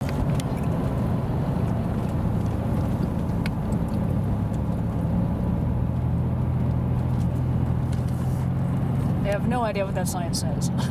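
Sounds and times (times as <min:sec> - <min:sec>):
car engine and road noise: 0:00.0 - 0:10.9.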